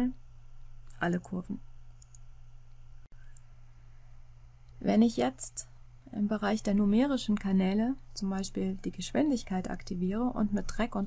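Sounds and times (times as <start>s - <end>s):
low electrical hum: 0.0s - 11.0s
computer mouse clicks: 2.0s - 2.3s.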